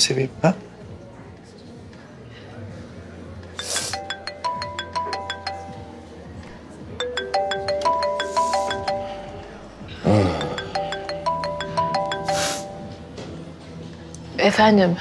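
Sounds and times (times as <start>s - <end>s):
smartphone ringtone: 3.6s - 6.3s, 7.0s - 13.2s.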